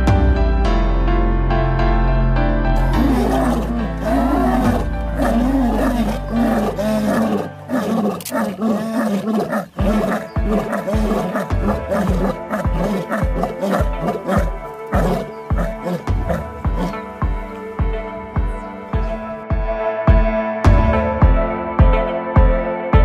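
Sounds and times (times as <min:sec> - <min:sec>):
background music: 0:00.0 - 0:23.0
lion roaring: 0:02.8 - 0:17.4.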